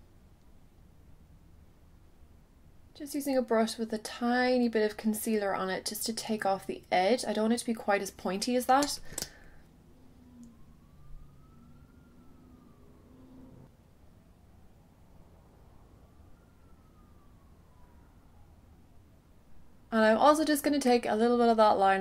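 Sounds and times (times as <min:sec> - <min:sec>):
faint siren wailing: 0:00.0 - 0:22.0.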